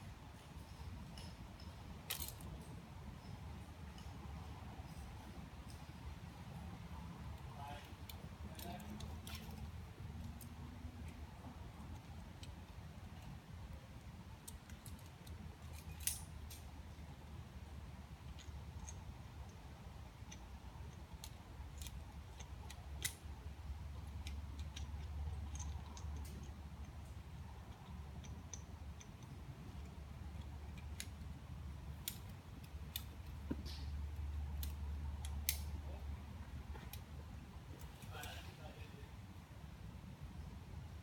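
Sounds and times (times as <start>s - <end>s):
low steady rumble: 0.0s - 41.0s
metallic clinks of climbing hardware: 0.4s - 6.0s, 7.6s - 9.7s, 14.4s - 17.0s, 23.9s - 31.2s.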